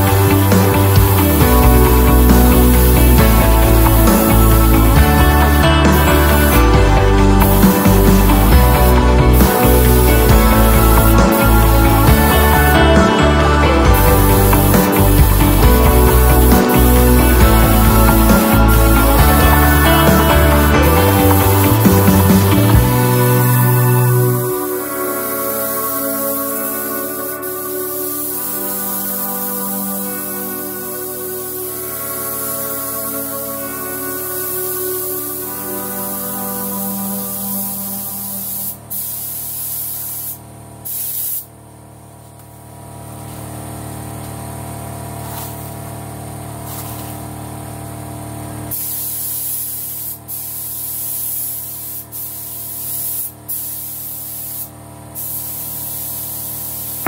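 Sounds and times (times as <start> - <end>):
background music: 0.0 - 38.8
paint spray gun hissing: 0.0 - 57.0.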